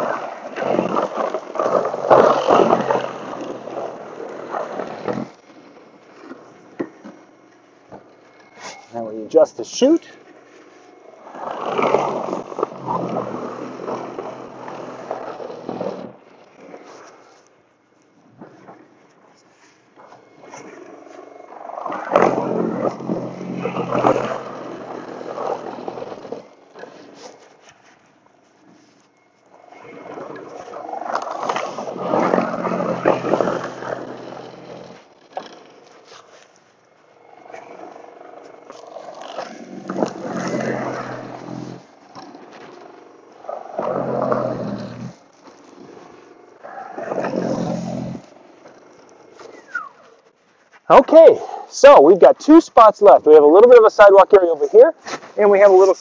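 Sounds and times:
snow blower throwing snow: 0.0 - 5.3, 21.7 - 26.5, 30.5 - 34.9
low steady hum: 0.0 - 56.0.

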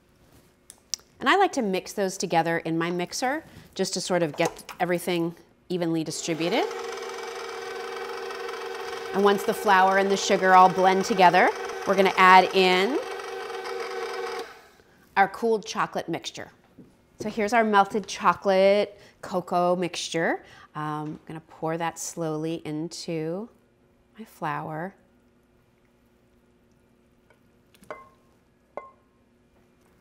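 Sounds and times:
stand mixer motor hum: 6.1 - 14.7.

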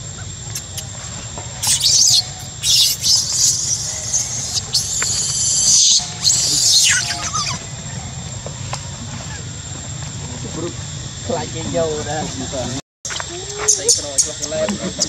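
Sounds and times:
baby monkey screaming: 0.5 - 0.9, 1.6 - 8.0.

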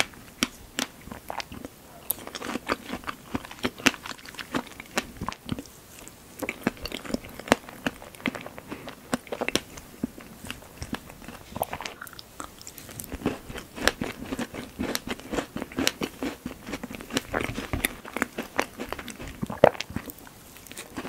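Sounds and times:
chewing crunchy pastry: 0.0 - 21.0.

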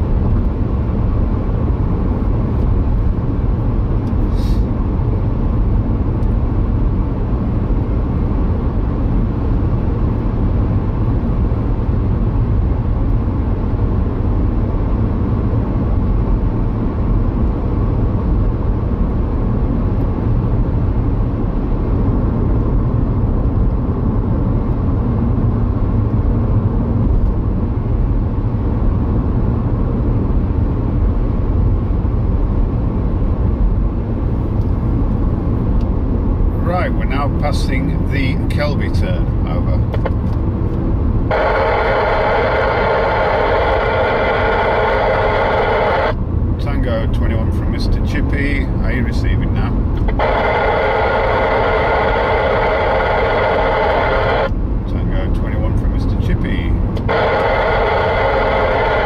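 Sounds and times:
car cabin road and engine noise: 0.0 - 59.0.

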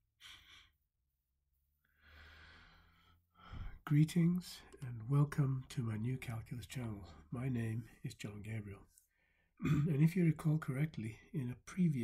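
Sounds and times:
man breathing: 1.8 - 3.8
man speaking: 3.8 - 8.9, 9.7 - 12.0.

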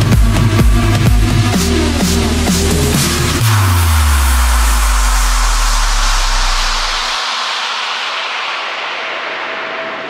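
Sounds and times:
steady synth tone: 0.0 - 10.0
white-noise sweep: 0.0 - 10.0.

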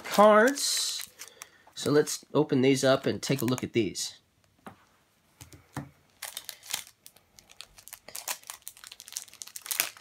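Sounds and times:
plastic shrink wrap crinkling: 0.0 - 2.2, 2.8 - 4.0, 6.0 - 10.0.

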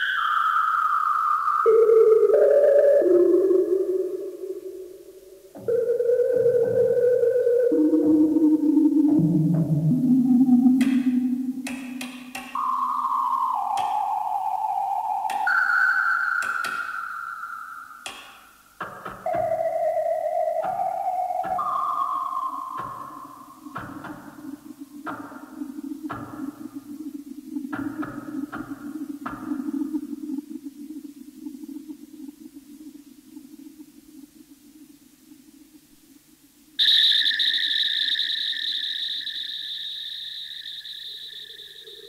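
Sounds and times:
sustained electronic tones: 0.0 - 34.4, 36.8 - 42.0.

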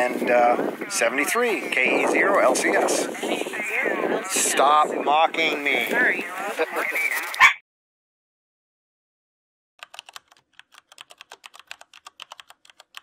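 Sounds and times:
computer keyboard typing: 9.8 - 13.0.

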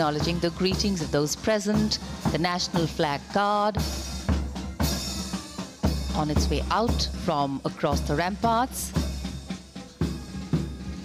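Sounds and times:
military drums playing a march: 0.0 - 11.0.

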